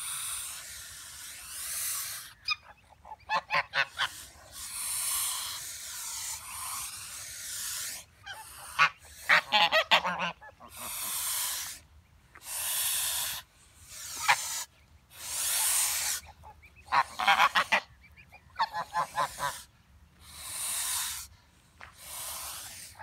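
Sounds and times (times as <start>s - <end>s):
geese honking: 0.0s - 11.8s, 12.4s - 19.7s
geese hissing: 0.0s - 23.0s.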